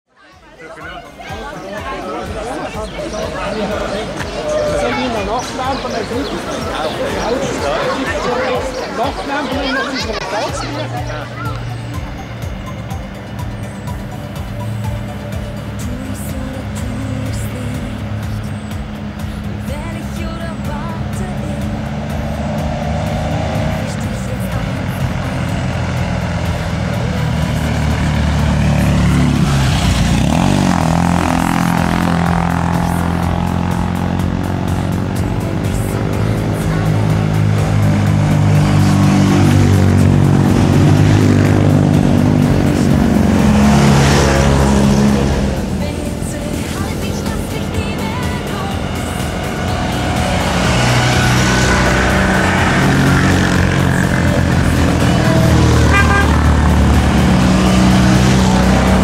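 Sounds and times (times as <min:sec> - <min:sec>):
small cars driving past: 0:00.2 - 0:59.0.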